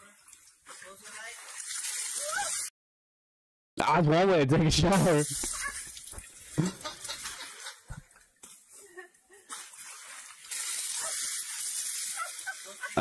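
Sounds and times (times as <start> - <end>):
water spraying from elephant trunk: 0.7 - 2.7, 5.0 - 8.0, 9.5 - 13.0.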